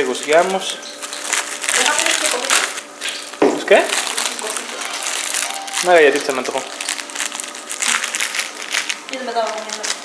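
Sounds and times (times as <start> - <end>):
plastic wrappers crinkling: 0.0 - 10.0.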